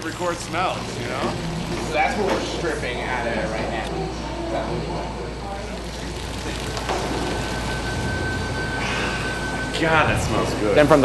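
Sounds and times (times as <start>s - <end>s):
faint voices: 0.0s - 8.1s
brewhouse equipment humming: 0.0s - 11.0s
low drone: 0.0s - 11.0s
thin steady whine: 0.0s - 11.0s.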